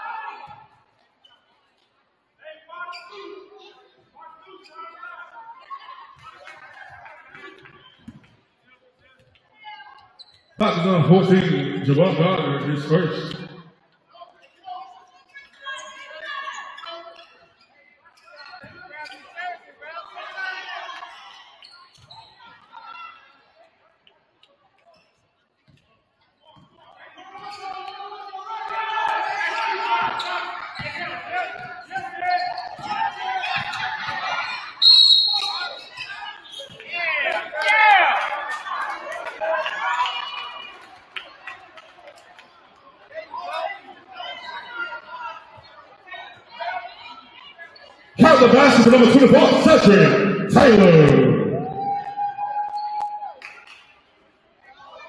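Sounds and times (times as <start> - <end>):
voices from bench and stands: 0.0 - 55.0
sneakers squeaking: 2.9 - 3.4, 10.1 - 10.6, 15.3 - 19.3, 21.1 - 22.8, 29.9 - 37.0
short high whistle blast: 34.8 - 35.7.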